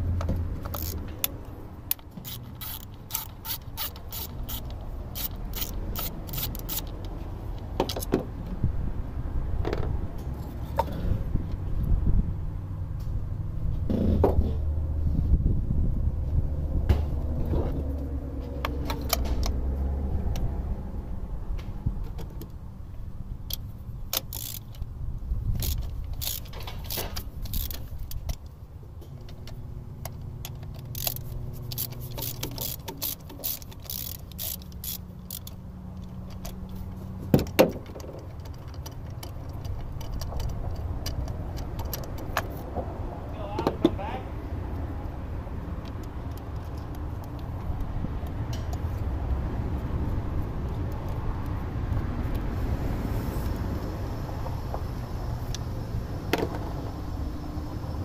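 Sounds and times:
low steady rumble: 0.0s - 58.0s
screwdriver and ratchet clicking: 0.6s - 8.1s, 23.5s - 24.9s, 25.5s - 28.5s, 29.3s - 42.7s.

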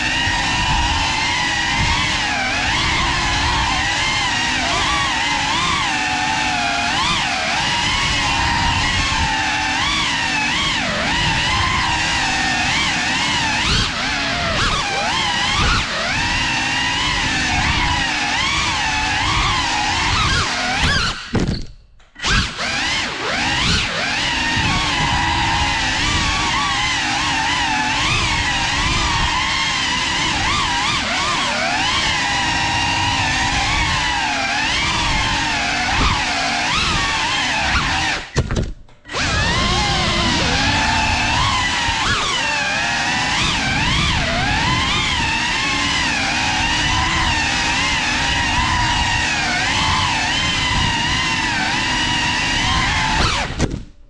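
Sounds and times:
drone motors whining: 0.0s - 54.0s.

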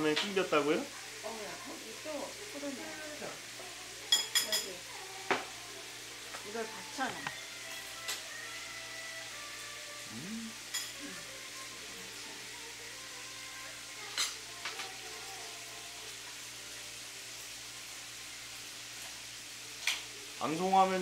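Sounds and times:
faint tv sound: 0.0s - 18.6s, 19.6s - 21.0s.

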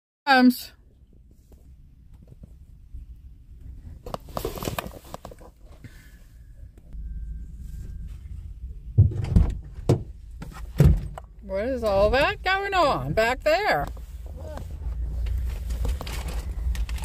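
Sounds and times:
low rumble: 5.9s - 17.0s
dull thumps: 8.9s - 13.8s
rustling: 13.6s - 17.0s.

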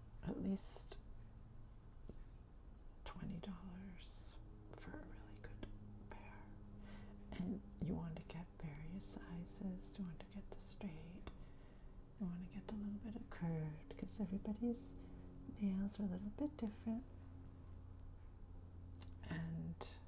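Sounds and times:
woman speaking softly: 0.2s - 1.0s, 3.0s - 6.6s, 7.3s - 11.4s, 12.2s - 17.2s, 19.0s - 20.0s.

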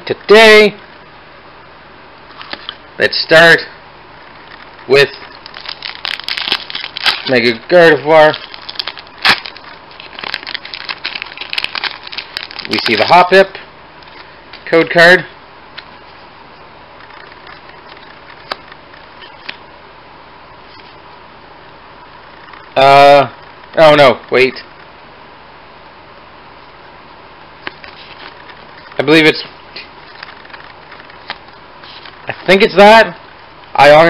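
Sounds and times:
trading cards rustling: 4.4s - 13.4s, 27.6s - 32.8s
foil wrapper crinkling: 4.5s - 13.4s, 27.6s - 32.7s.

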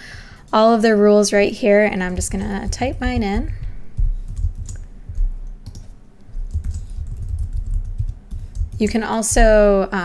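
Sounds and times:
computer keyboard typing: 2.0s - 9.5s.

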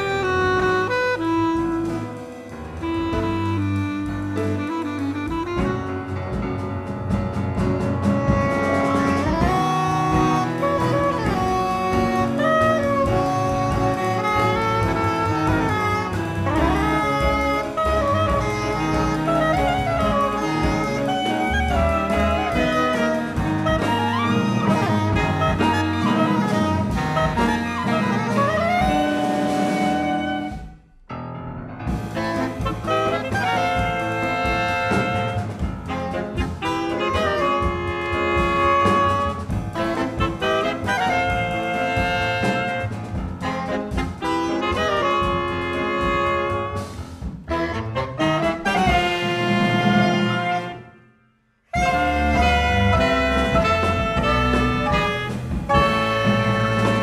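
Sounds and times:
soprano saxophone: 0.0s - 6.6s, 8.0s - 30.8s, 32.1s - 57.0s
jazz ensemble playing: 0.0s - 57.0s.

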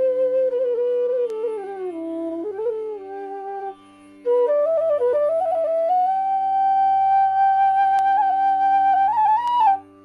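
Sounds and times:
flute playing: 0.0s - 10.0s.

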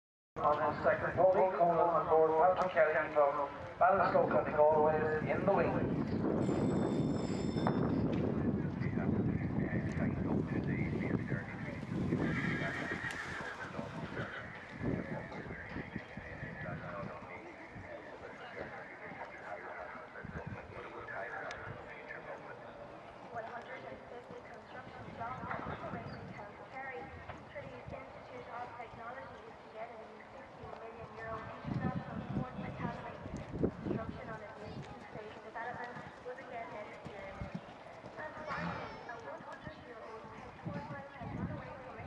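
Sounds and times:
hoofbeats on sand: 6.4s - 19.6s, 23.2s - 42.0s
voices talking: 8.2s - 42.0s.

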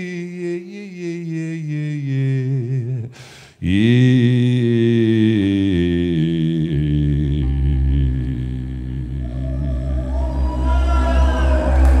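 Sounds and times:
long held low note: 7.2s - 12.0s.

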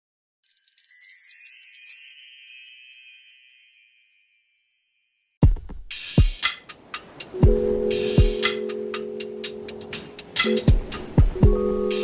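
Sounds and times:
chimes ringing: 0.4s - 5.4s.

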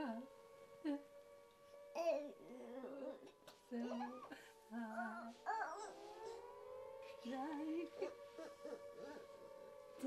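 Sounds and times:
air-raid siren rising: 0.0s - 10.0s.

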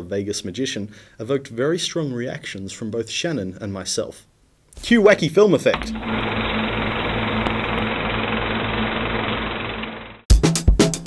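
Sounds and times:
fast mechanical rattle: 5.8s - 10.2s
music with sharp drum hits: 10.3s - 11.0s.

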